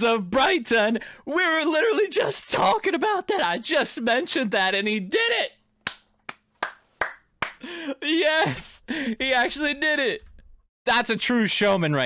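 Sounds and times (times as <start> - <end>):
man clapping hands: 5.8 - 7.7.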